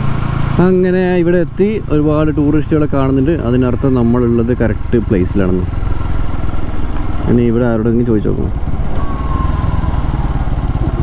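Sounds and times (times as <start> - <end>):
motorcycle engine rumbling: 0.0 - 11.0
man talking: 0.6 - 5.7, 7.2 - 8.6.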